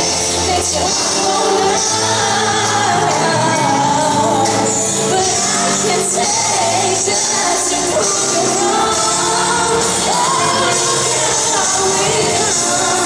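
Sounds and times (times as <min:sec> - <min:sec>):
band playing pop ballad: 0:00.0 - 0:13.0
woman singing into a microphone: 0:00.0 - 0:13.0.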